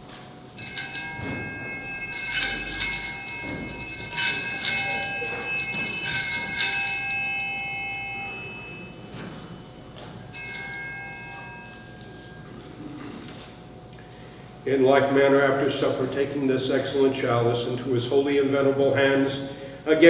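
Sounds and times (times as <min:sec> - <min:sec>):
small bells shaken: 0:00.6 - 0:09.2, 0:10.0 - 0:13.0.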